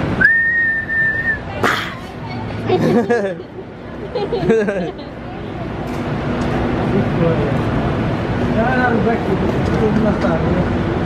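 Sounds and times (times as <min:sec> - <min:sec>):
whistled note sliding up: 0:00.2 - 0:01.4.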